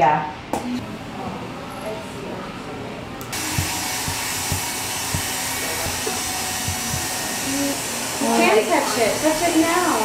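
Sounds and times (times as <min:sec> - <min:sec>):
hair dryer blowing: 0:03.3 - 0:10.0.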